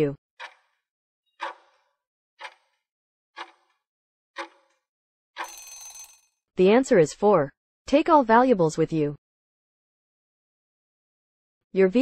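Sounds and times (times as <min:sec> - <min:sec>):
ringing end tone: 0:05.4 - 0:06.2.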